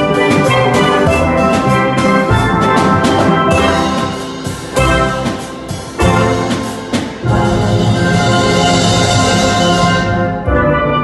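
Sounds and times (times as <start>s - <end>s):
drum beat: 0.0s - 10.6s
steel pan band playing: 0.0s - 11.0s.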